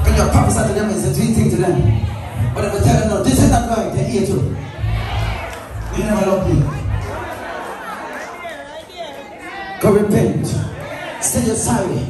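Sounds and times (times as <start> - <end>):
man's amplified voice: 0.0 - 4.7, 5.7 - 7.0, 8.4 - 12.0
congregation chatter in large hall: 0.0 - 12.0.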